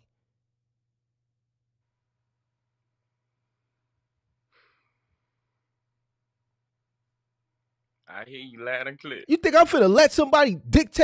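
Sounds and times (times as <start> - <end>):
faint exhale: 4.5 - 5.4.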